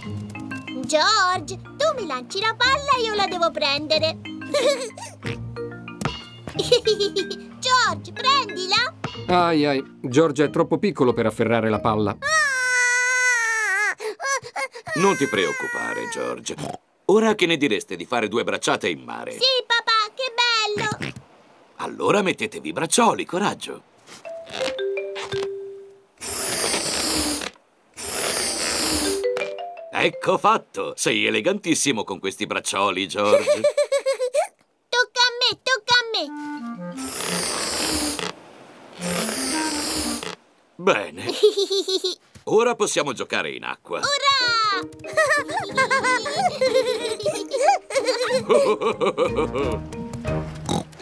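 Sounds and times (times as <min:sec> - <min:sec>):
cartoon background music: 0:00.0 - 0:12.5, 0:44.0 - 0:51.0
cartoon pigs giggling and snorting: 0:04.4 - 0:05.5, 0:06.5 - 0:07.5, 0:44.1 - 0:49.8.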